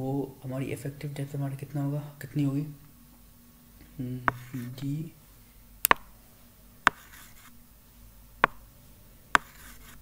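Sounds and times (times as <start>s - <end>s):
stylus scratching on screen: 4.3s - 4.9s, 6.9s - 7.6s, 9.4s - 10.0s
stylus tapping tablet screen: 4.3s - 4.9s, 5.8s - 6.1s, 6.8s - 7.5s, 8.4s - 8.7s, 9.3s - 10.0s.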